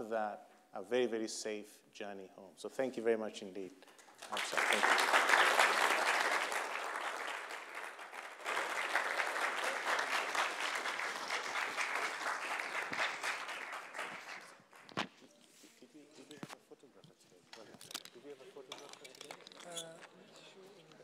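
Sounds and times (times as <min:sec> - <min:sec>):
audience applauding: 0:04.0 - 0:15.0.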